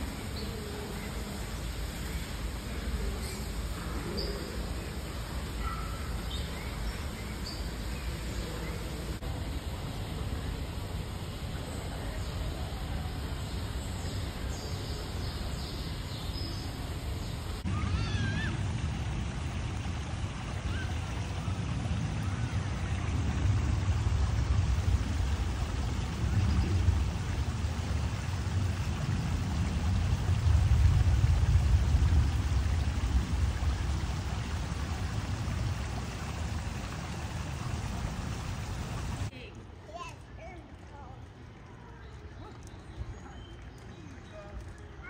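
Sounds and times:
steady background hum: 0:00.0 - 0:41.8
water splashing over rocks: 0:17.5 - 0:45.0.

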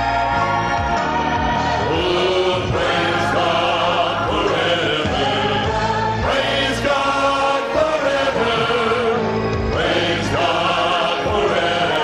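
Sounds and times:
male choir singing in harmony: 0:00.0 - 0:12.0.

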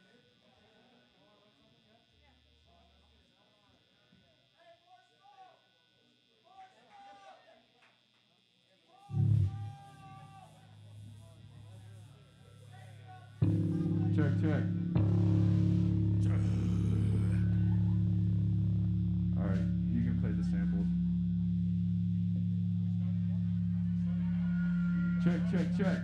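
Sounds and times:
electric guitar and bass: 0:09.1 - 0:11.8, 0:13.4 - 0:26.0
distorted low guitar chord: 0:09.1 - 0:26.0.

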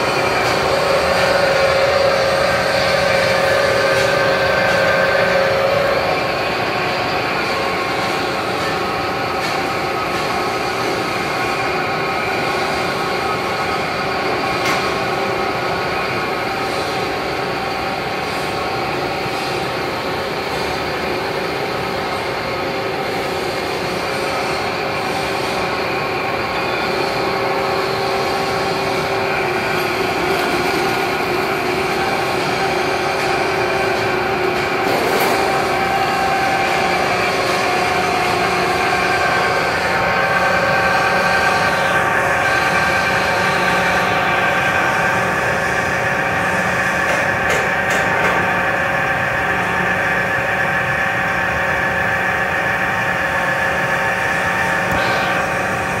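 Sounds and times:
gearmotor whine: 0:00.0 - 0:56.0.

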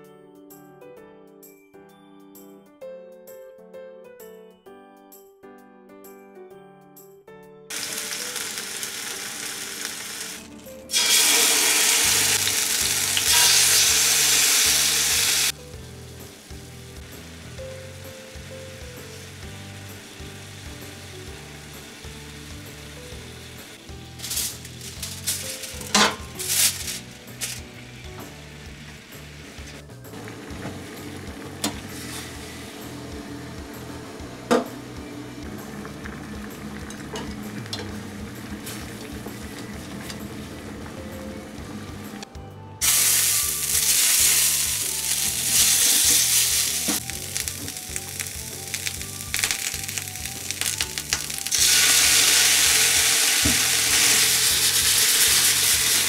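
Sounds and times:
music: 0:00.0 - 0:56.0
chicken sizzling in frying pan: 0:07.7 - 0:33.8, 0:42.8 - 0:56.0.

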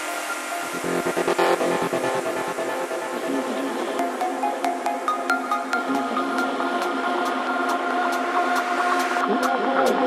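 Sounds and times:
held synth tones: 0:00.7 - 0:07.4.

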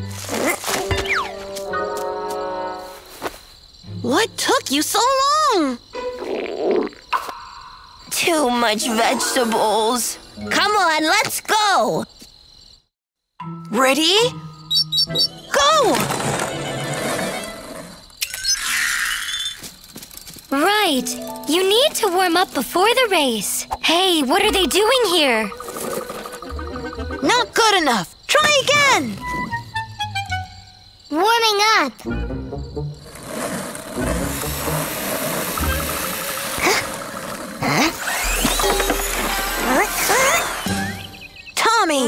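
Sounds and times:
cartoon background music: 0:00.0 - 0:02.9, 0:08.2 - 0:11.0, 0:13.4 - 0:17.6, 0:20.6 - 0:27.8, 0:28.7 - 0:30.8, 0:31.4 - 0:33.0, 0:38.2 - 0:42.0
toy car engine buzzing: 0:34.4 - 0:41.0.

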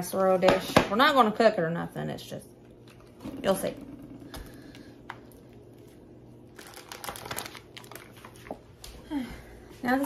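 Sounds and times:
plastic packaging crinkling: 0:05.3 - 0:08.7.

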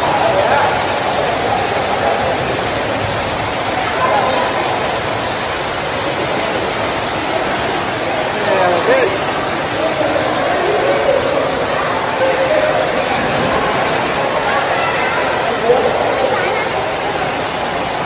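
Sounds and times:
children's voices and calls: 0:00.0 - 0:05.5, 0:06.4 - 0:18.0
waterfall pouring into pool: 0:00.0 - 0:18.0.

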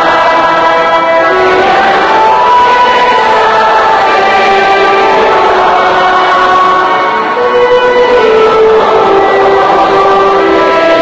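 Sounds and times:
audience singing a hymn: 0:00.0 - 0:11.0
orchestral accompaniment: 0:00.0 - 0:11.0.

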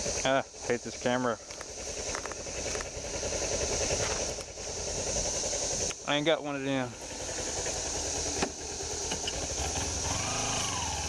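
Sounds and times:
cicadas buzzing: 0:00.0 - 0:11.0
motorcycle engine idling: 0:00.0 - 0:11.0.

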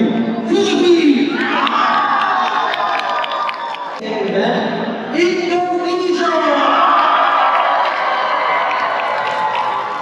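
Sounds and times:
crowd cheering and shouting: 0:00.1 - 0:04.0, 0:06.2 - 0:10.0.

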